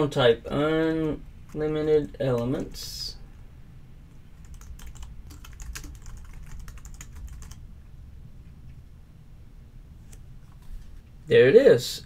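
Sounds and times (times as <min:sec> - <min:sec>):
typing on computer keyboard: 0:04.4 - 0:07.6.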